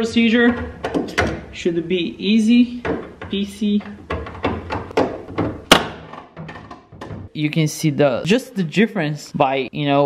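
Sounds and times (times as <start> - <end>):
plastic knocks and clicks: 0.5 - 1.4, 2.8 - 7.3.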